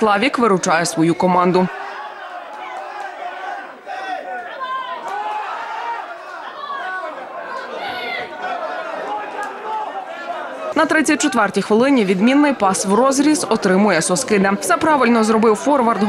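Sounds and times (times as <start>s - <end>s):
voices calling and chattering: 0.0s - 16.0s
loud shout: 1.7s - 11.4s.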